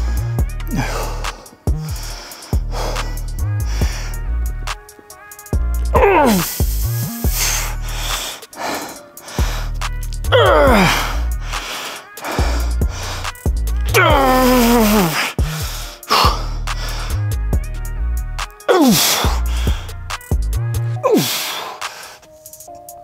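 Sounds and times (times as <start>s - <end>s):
background music with heavy beat: 0.0s - 23.0s
man crying out with effort: 0.4s - 2.0s, 5.9s - 6.8s, 10.2s - 13.1s, 13.8s - 16.6s, 18.6s - 19.9s, 21.0s - 21.8s.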